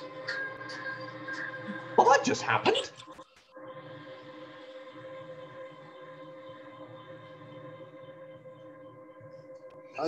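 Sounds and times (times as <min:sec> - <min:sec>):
drone of held tones: 0:00.0 - 0:10.0.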